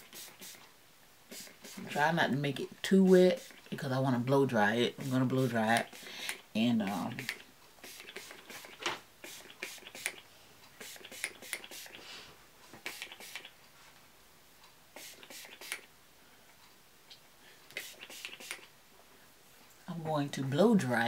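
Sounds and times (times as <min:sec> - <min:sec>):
spray bottle hissing: 0:00.0 - 0:00.6, 0:01.3 - 0:02.0, 0:03.1 - 0:03.7, 0:05.0 - 0:06.3, 0:06.9 - 0:10.2, 0:10.8 - 0:12.0, 0:12.8 - 0:13.5, 0:15.0 - 0:15.9, 0:17.7 - 0:18.6.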